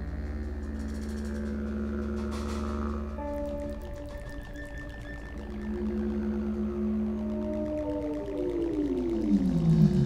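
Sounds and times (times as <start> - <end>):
live band low drone: 0.0 - 10.0
sustained note: 0.0 - 10.0.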